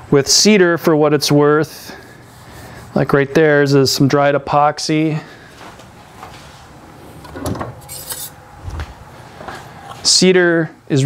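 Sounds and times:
short scrape: 0:07.8 - 0:08.4.

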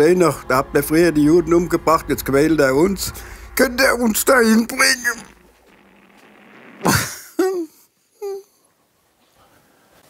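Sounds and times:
man clearing his throat: 0:06.8 - 0:07.7.

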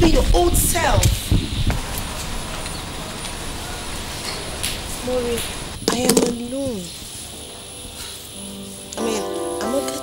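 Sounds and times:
low rumble with hiss: 0:00.0 - 0:09.7.

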